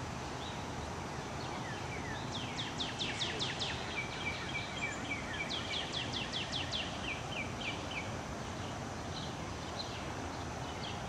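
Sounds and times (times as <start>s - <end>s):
background hiss: 0.0s - 11.0s
songbird whistling: 1.4s - 8.1s.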